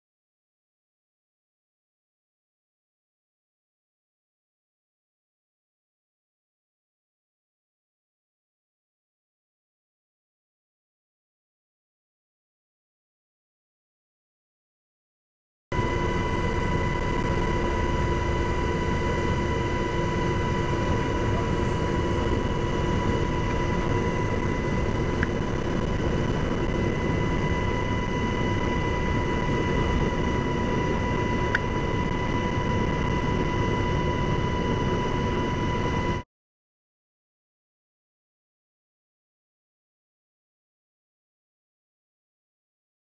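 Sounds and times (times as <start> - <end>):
aircraft cabin engine drone: 15.7 - 36.3.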